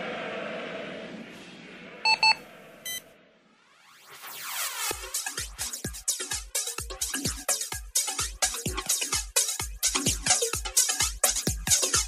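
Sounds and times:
buzzy beep: 2.1s - 3.0s
short electronic beeps: 2.1s - 3.0s.

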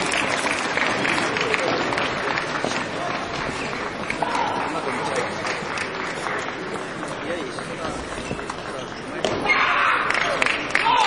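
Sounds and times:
murmur of spectators' voices: 0.0s - 11.0s.

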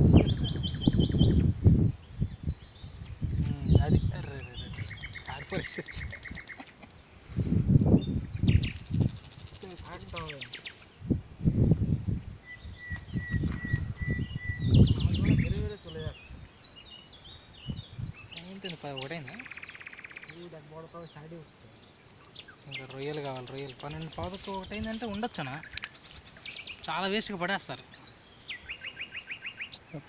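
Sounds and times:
birds chirping and trilling: 0.0s - 30.0s.

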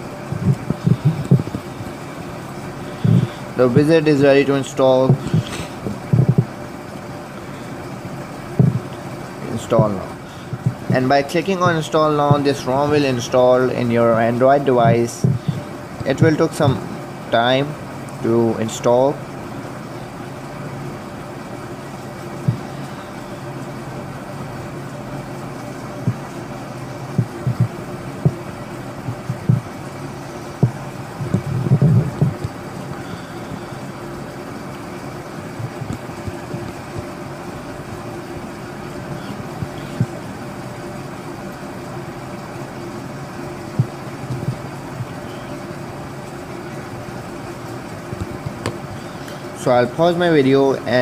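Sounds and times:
faint steady tones: 0.0s - 51.0s
low background hum: 0.0s - 51.0s.

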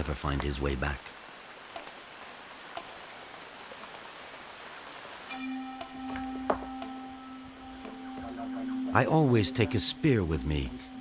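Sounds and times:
insect chirring: 0.0s - 11.0s
faint clicks: 1.7s - 2.0s, 2.7s - 3.0s.

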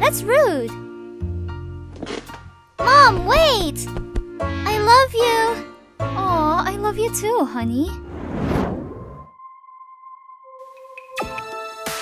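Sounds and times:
whoosh: 8.0s - 9.3s.

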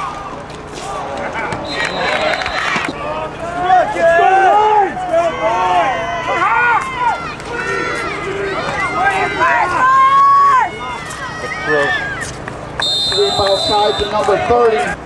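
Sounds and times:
crowd shouting and cheering: 0.0s - 15.0s.

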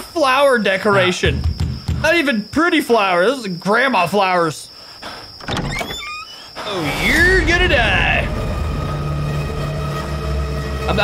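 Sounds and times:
ominous ambient drone: 6.5s - 11.0s.

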